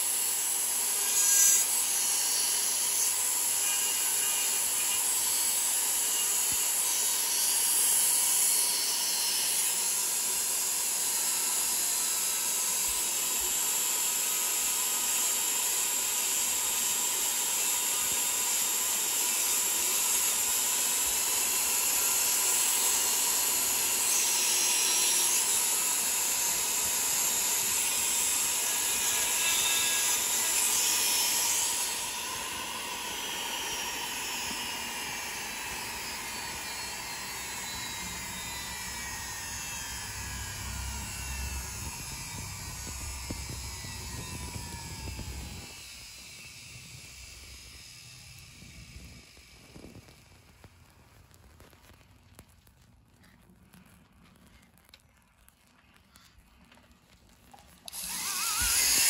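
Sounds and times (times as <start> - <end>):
rotary carving tool grinding: 0.0 - 50.2, 57.8 - 59.0
tool whine spinning down: 0.0 - 50.8, 57.8 - 59.0.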